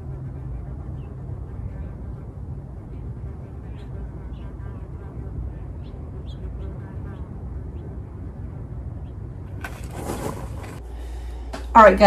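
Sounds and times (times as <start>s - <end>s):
distant traffic rumble: 0.0s - 12.0s
rustling and clatter: 9.5s - 10.8s.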